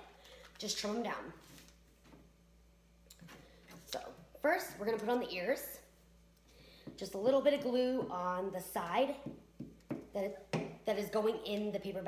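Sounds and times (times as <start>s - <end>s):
person speaking: 6.9s - 12.0s.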